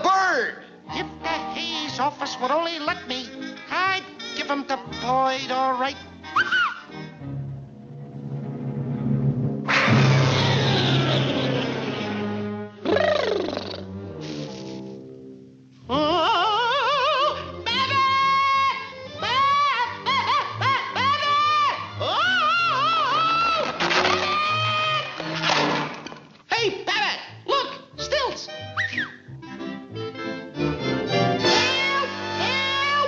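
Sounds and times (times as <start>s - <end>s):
orchestral score low notes: 6.9s - 12.8s, 29.3s - 33.0s
crash-like rush of noise: 8.5s - 12.5s.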